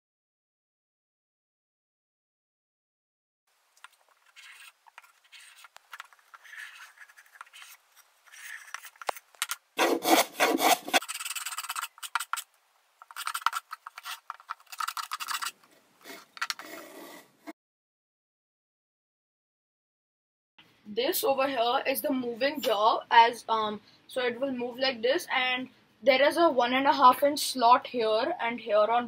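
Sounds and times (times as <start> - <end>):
hand tool scraping wood: 4.2 - 12.4, 13.0 - 17.4.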